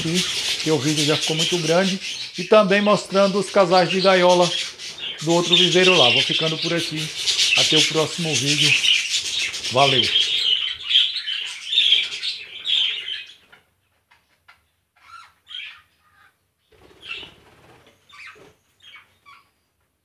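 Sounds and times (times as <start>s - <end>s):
budgerigars chirping: 0.0s - 13.6s, 15.0s - 19.5s.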